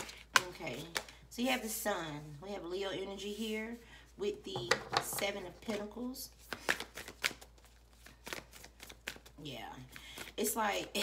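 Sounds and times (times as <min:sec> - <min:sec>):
cards flicking and tapping: 0:06.4 - 0:09.3.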